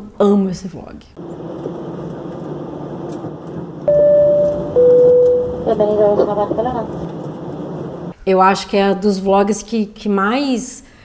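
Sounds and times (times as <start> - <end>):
airliner cabin rumble: 1.2 - 8.2
clear held tone: 3.8 - 6.5.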